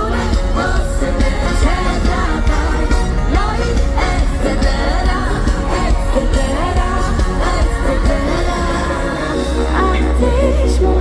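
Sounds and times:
bass: 0:00.0 - 0:11.0
drums: 0:00.0 - 0:11.0
wordless sung melody: 0:00.0 - 0:11.0.

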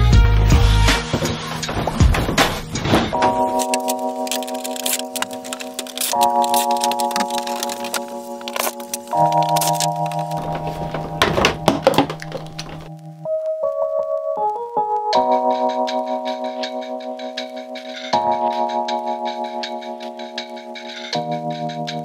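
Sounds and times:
background music of held chords: 0:00.0 - 0:22.0
knocks and clatters of fixtures: 0:01.0 - 0:12.9.

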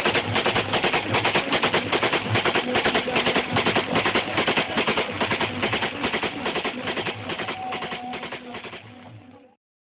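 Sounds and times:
rapid sharp beats: 0:00.0 - 0:09.2.

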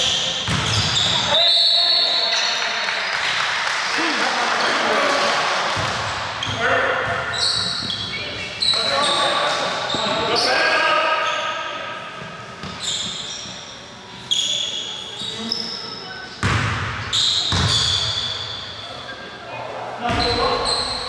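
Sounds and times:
sneakers squeaking on floor: 0:00.0 - 0:03.4, 0:05.8 - 0:21.0
players' voices: 0:00.2 - 0:12.3
basketball bouncing on court: 0:00.4 - 0:01.3, 0:16.4 - 0:18.2.

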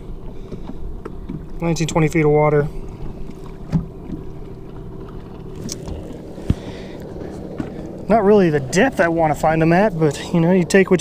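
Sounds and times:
electric trolling motor humming: 0:00.0 - 0:11.0.

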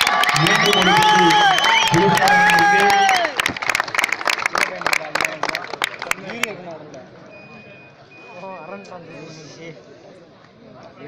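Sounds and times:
spectator crowd noise: 0:00.0 - 0:11.0.

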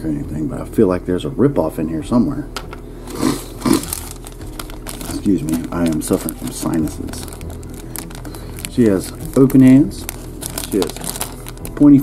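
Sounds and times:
plastic bag crinkling: 0:03.0 - 0:12.0.

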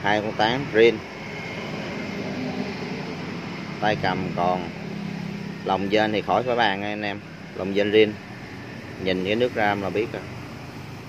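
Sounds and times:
distant machine noise: 0:00.0 - 0:11.0.

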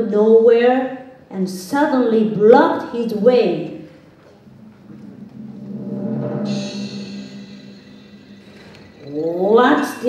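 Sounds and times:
high shimmering music layer: 0:04.3 - 0:10.0
deep drum-like rumble: 0:04.4 - 0:09.2.

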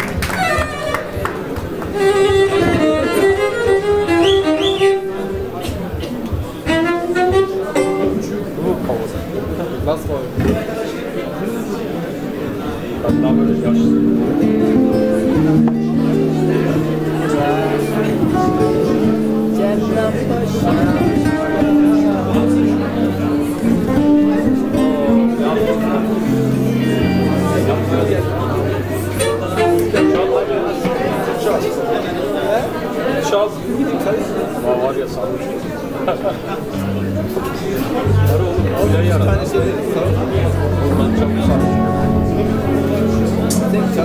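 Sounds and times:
voices: 0:00.0 - 0:44.0
bowed fiddle folk melody: 0:00.4 - 0:05.6, 0:06.6 - 0:08.4, 0:13.1 - 0:30.9.

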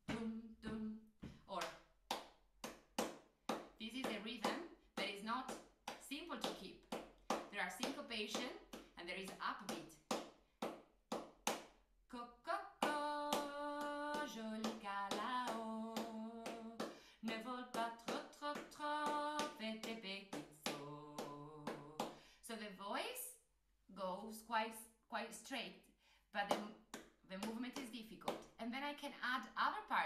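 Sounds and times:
woman singing: 0:00.0 - 0:01.7, 0:03.8 - 0:06.7, 0:12.1 - 0:22.8
hand claps and slaps: 0:00.1 - 0:11.9, 0:12.8 - 0:22.2, 0:26.4 - 0:28.6.

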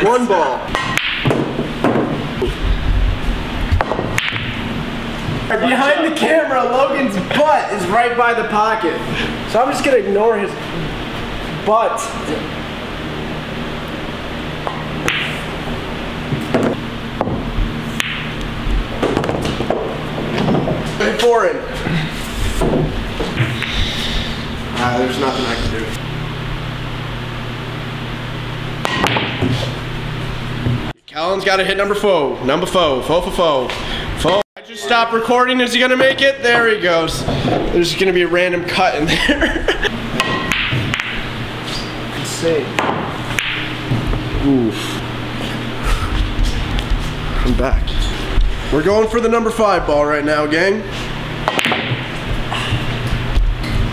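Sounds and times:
steady low hum: 0:00.0 - 0:53.9
cue striking ball: 0:00.7 - 0:02.5, 0:03.8 - 0:04.8, 0:14.6 - 0:15.5, 0:16.3 - 0:18.4, 0:19.0 - 0:20.8, 0:28.8 - 0:29.7, 0:40.2 - 0:41.3, 0:42.8 - 0:44.1, 0:51.4 - 0:52.2
billiard balls clacking: 0:00.7 - 0:02.6, 0:03.8 - 0:04.8, 0:16.3 - 0:18.4, 0:19.0 - 0:21.0, 0:40.2 - 0:41.3, 0:51.4 - 0:52.3.

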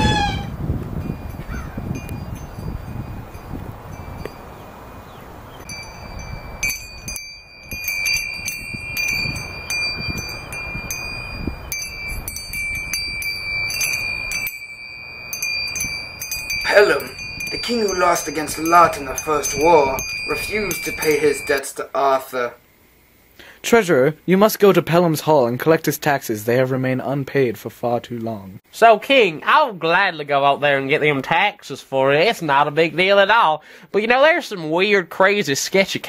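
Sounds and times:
metal wind chime tinkling: 0:01.0 - 0:04.5, 0:05.6 - 0:21.7.

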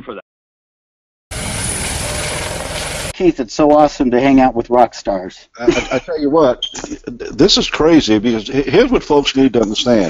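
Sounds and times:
helicopter flying close by: 0:01.3 - 0:03.1.

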